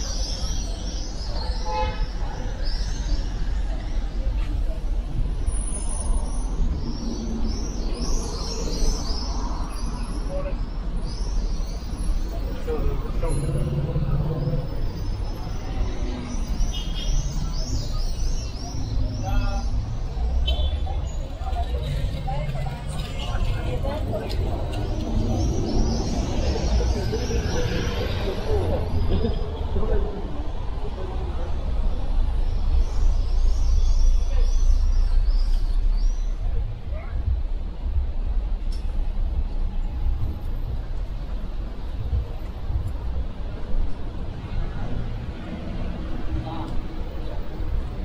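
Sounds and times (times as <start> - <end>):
people's voices: 0.0 - 48.0
traffic rumble: 0.0 - 48.0
birds chirping: 6.2 - 30.8.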